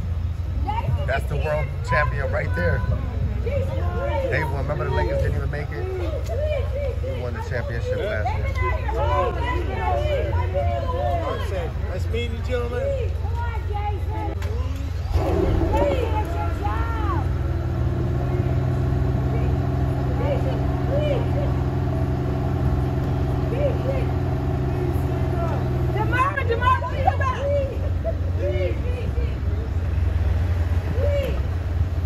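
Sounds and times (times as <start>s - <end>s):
street rumble: 0.0s - 32.0s
vehicle engine idling: 0.0s - 32.0s
voices calling out: 0.0s - 32.0s.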